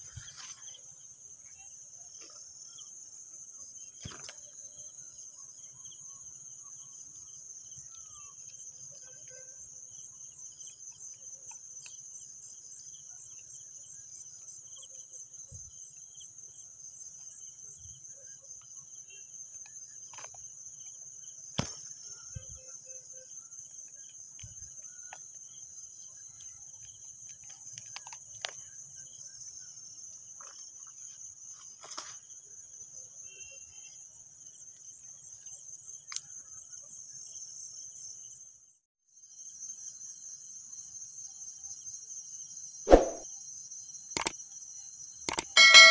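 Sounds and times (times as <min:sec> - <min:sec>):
crickets chirping: 0:00.0 - 0:38.6, 0:39.2 - 0:45.9
sharp knock: 0:42.9 - 0:43.2, 0:45.6 - 0:45.9
faint clicks: 0:44.2 - 0:44.4.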